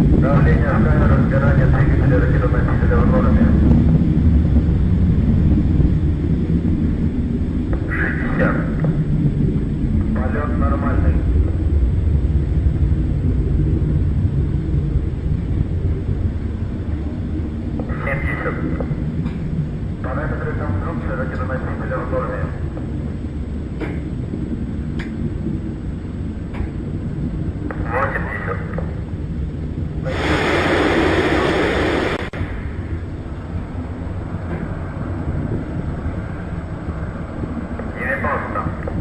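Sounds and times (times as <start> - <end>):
rocket engine rumble: 0.0 - 39.0
voices: 0.2 - 3.7, 7.8 - 9.0, 10.0 - 11.3, 17.8 - 22.8, 27.7 - 29.0, 37.8 - 39.0.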